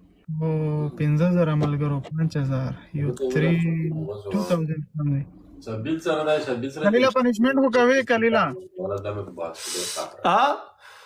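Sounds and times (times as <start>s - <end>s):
man's sharp hissing breath: 9.6s - 10.1s.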